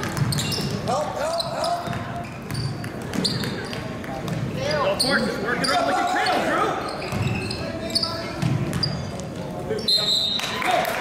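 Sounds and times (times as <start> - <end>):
basketball bouncing: 0.0 - 0.8, 1.8 - 4.6, 7.0 - 7.4, 8.3 - 9.4
sneaker squeaks: 0.0 - 10.6.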